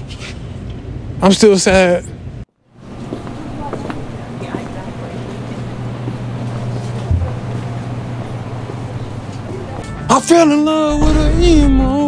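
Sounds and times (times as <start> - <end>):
low store hum: 2.1 - 12.0.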